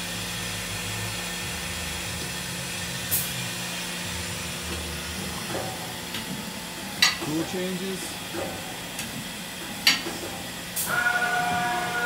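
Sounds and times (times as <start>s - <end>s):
machining center humming: 0.0s - 12.0s.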